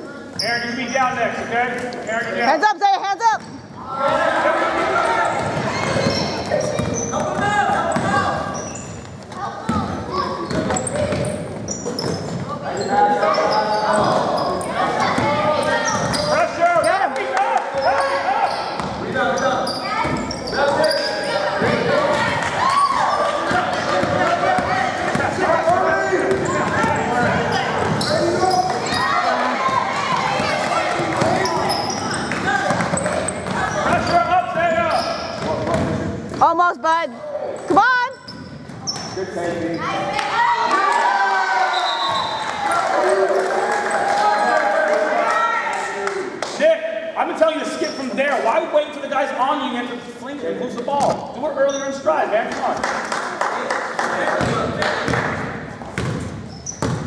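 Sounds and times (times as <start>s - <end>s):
echoing voices: 0.0s - 56.0s
basketball bouncing on wooden floor: 5.4s - 8.2s, 9.7s - 12.5s, 23.5s - 28.9s, 56.0s - 57.0s.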